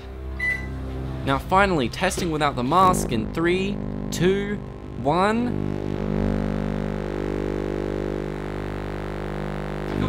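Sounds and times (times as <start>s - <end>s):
microwave electrical buzzing hum: 0.0s - 10.0s.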